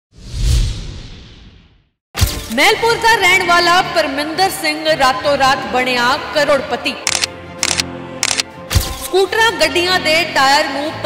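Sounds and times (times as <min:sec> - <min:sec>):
swoosh with deep rumble: 0:00.1 - 0:01.9.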